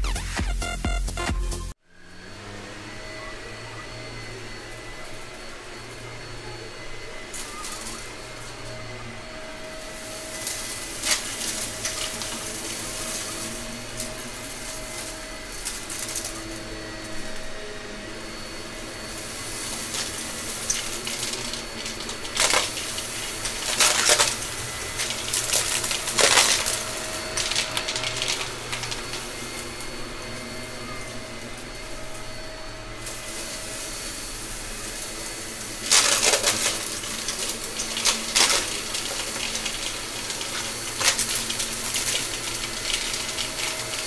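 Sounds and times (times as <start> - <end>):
upright vacuum motor whine: 1.7 - 44.0
debris clicking in vacuum: 10.4 - 16.4, 19.2 - 29.6, 34.9 - 44.0.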